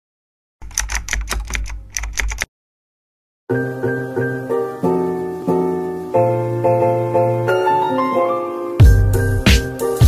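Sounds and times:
keystroke clicks: 0.6s - 2.5s.

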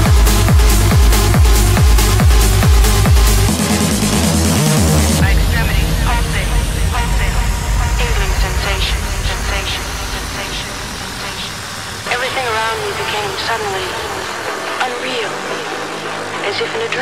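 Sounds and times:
low rumble: 0.0s - 16.7s
falling synth sweep: 0.0s - 16.9s.

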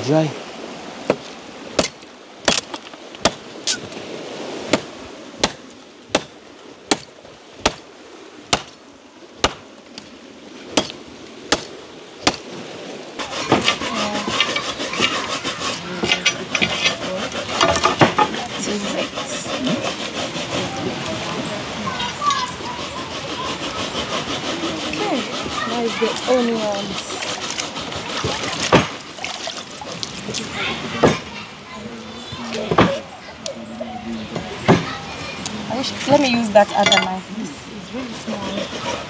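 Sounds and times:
machete striking wood: 1.8s - 3.9s, 4.7s - 7.9s, 8.5s - 8.8s, 9.4s - 9.6s, 10.8s - 12.5s
scraping and clattering: 13.2s - 20.8s.

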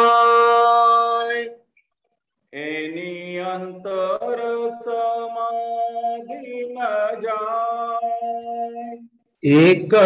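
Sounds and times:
voices singing long notes: 0.0s - 1.6s, 2.6s - 10.0s.

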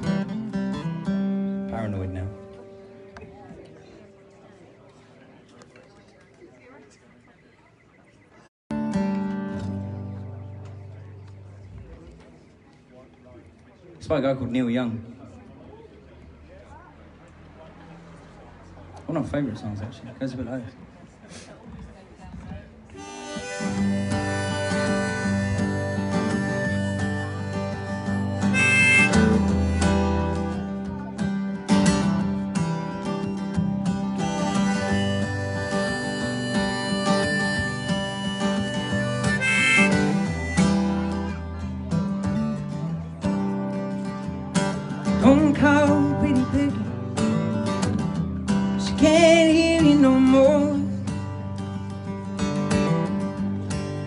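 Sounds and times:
strummed acoustic guitar: 0.0s - 5.0s, 8.7s - 12.4s, 23.0s - 54.0s
harmonica holding long notes: 23.0s - 31.0s, 31.6s - 43.0s.

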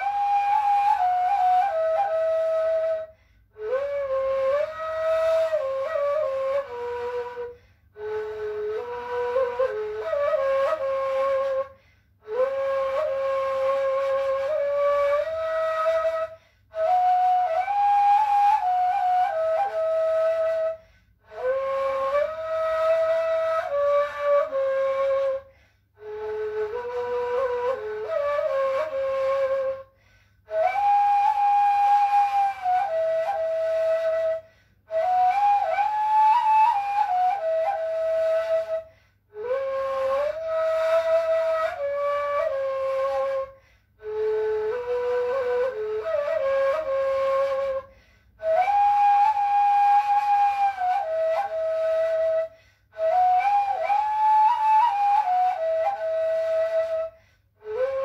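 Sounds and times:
solo reed flute melody: 0.0s - 58.0s.

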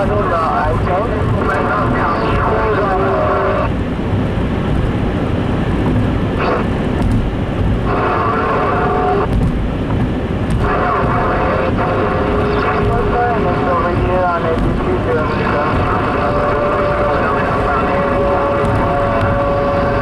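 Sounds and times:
car road and engine noise: 0.0s - 20.0s.

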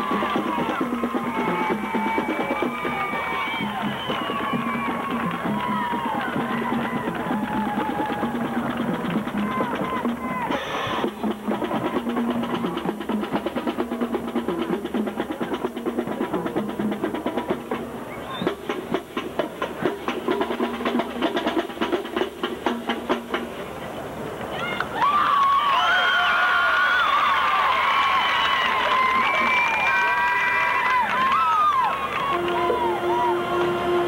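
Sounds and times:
crowd cheering and shouting: 0.0s - 11.1s, 24.5s - 34.0s
marching band drums: 0.0s - 24.2s, 28.8s - 34.0s
band sustained notes: 32.2s - 34.0s.

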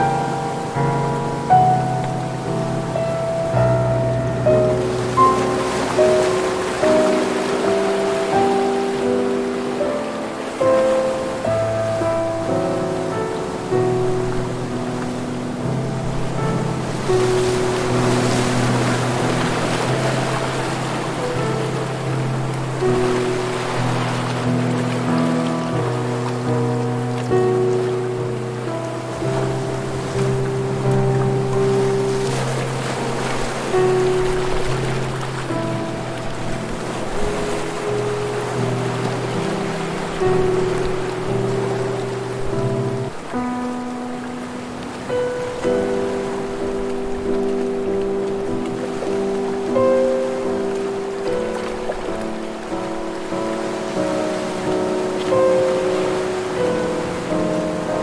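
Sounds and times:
ocean waves breaking on shore: 0.0s - 58.0s
slow soft instrumental music: 0.0s - 58.0s.

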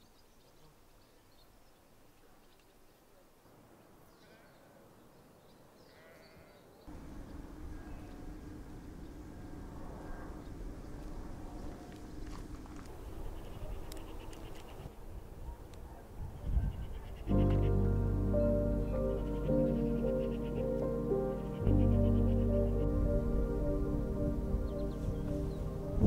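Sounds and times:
low outdoor background: 0.0s - 26.0s.

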